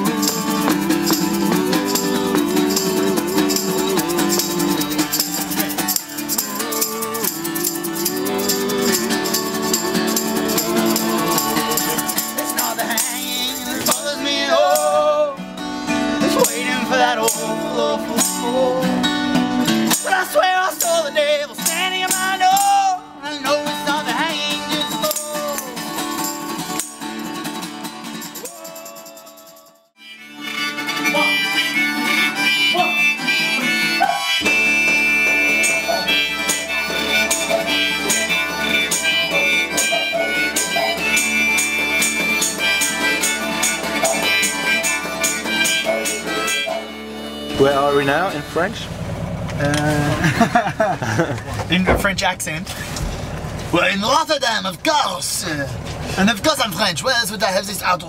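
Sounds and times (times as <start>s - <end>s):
didgeridoo drone: 0.0s - 14.0s, 30.7s - 50.6s
wavering melodic lead: 0.0s - 15.1s, 30.0s - 49.4s
harmonica: 0.0s - 48.9s
acoustic guitar: 0.0s - 58.0s.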